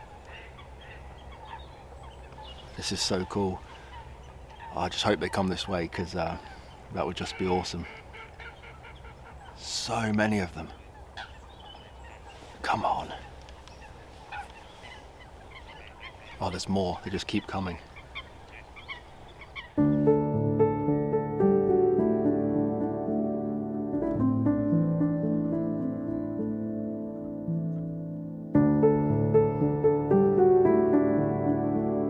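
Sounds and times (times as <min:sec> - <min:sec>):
birds calling: 0:00.0 - 0:20.4.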